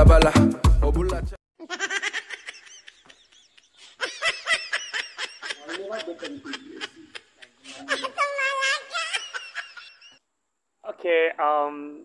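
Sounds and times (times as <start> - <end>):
people laughing: 1.6 - 10.2.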